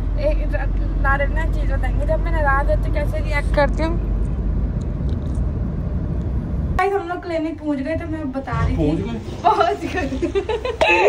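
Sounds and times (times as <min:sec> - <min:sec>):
woman talking and laughing: 0:09.5 - 0:11.0.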